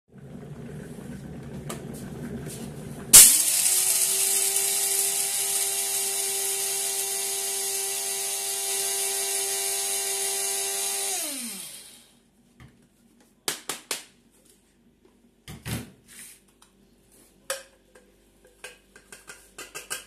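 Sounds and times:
coffee grinder running: 0.1s - 12.2s
grinder blades spinning down: 3.1s - 12.1s.

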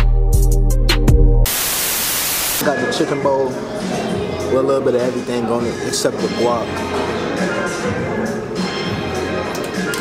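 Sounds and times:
loud static hiss: 1.4s - 2.7s.

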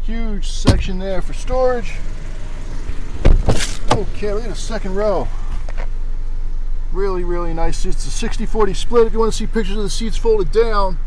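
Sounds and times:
steady low rumble: 0.0s - 11.0s
car door latch clunk: 0.6s - 1.2s, 3.2s - 4.2s.

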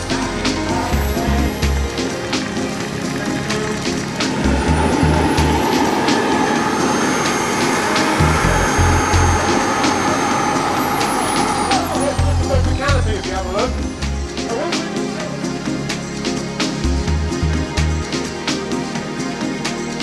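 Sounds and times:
music with thumping bass beat: 0.0s - 5.6s, 8.2s - 9.5s, 11.8s - 15.4s, 16.0s - 20.0s
jet turbine engine whine: 2.2s - 14.0s.

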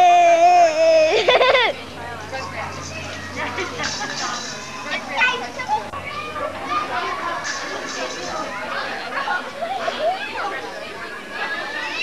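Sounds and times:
young children chattering: 0.0s - 12.0s.

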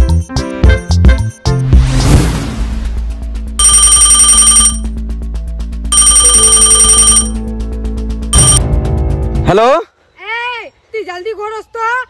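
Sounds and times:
background music: 0.0s - 9.8s
mobile phone ringtone: 3.6s - 4.9s, 5.9s - 7.4s, 8.4s - 8.6s.

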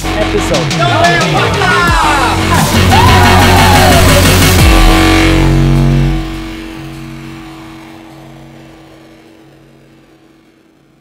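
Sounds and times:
background music held chord: 0.0s - 11.0s
repeating low note: 3.5s - 11.0s.

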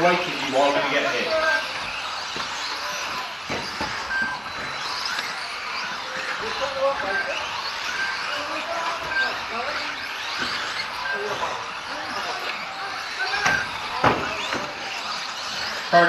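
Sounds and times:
background chatter in a hall: 0.0s - 16.0s
rc car motors whining: 0.0s - 16.0s
sharp knocks: 13.4s - 14.6s.

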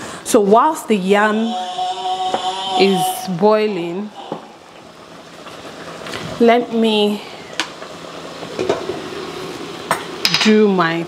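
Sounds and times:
kitchen background noise: 0.4s - 11.0s.

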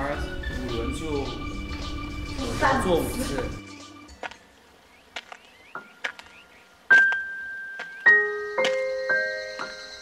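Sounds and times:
light keyboard background music: 0.0s - 4.6s, 5.7s - 10.0s.

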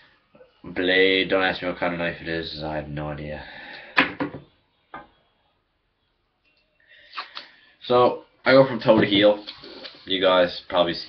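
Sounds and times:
objects knocking when set down: 4.0s - 5.1s.

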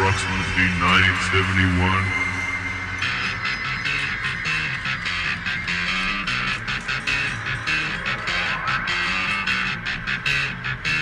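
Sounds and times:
progressive rock music: 2.1s - 11.0s.

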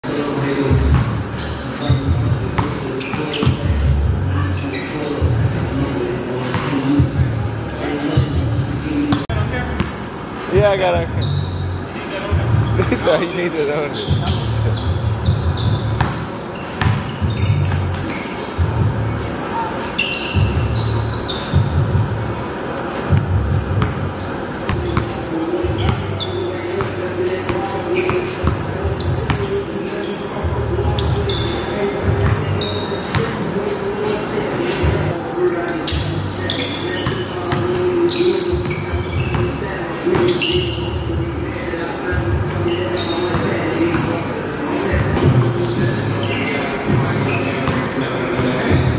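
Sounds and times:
sneaker squeaks: 0.1s - 48.9s
basketball bouncing on gym floor: 0.7s - 1.2s, 1.9s - 3.8s, 14.1s - 19.0s, 23.1s - 24.0s.

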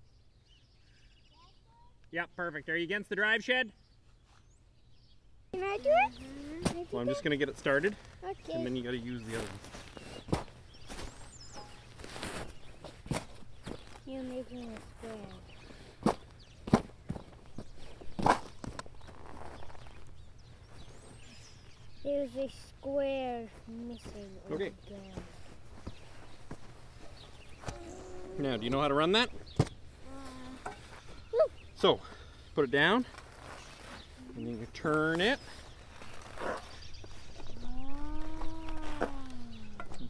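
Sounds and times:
footsteps on grass: 5.6s - 22.1s, 23.0s - 31.4s
spade crunching into turf: 9.4s - 13.4s.

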